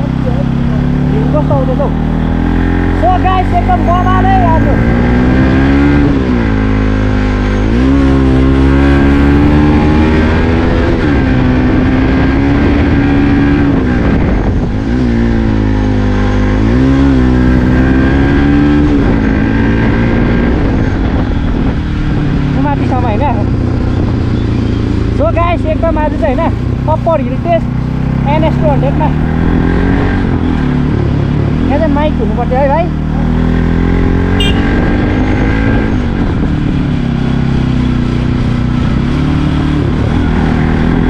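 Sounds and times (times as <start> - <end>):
motorcycle engine revving uphill: 0.0 - 41.0.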